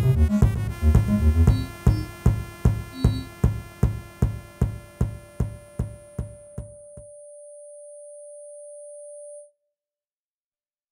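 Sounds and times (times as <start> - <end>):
steady synthesizer tone: 0.0 - 8.8.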